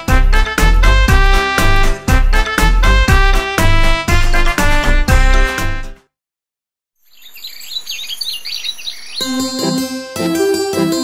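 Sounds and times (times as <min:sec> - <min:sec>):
bouncy keyboard tune: 0:00.0 - 0:06.0, 0:09.2 - 0:11.0
birds chirping: 0:07.0 - 0:09.5.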